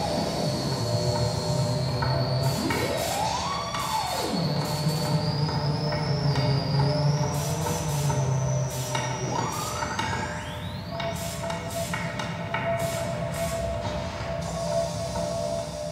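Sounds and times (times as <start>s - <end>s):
high whistling tone sweeping: 0.0s - 15.9s
low electronic drone: 0.0s - 15.9s.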